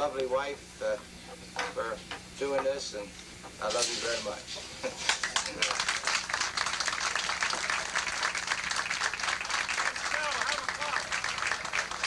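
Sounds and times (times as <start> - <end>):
audience applauding: 4.9 - 12.0.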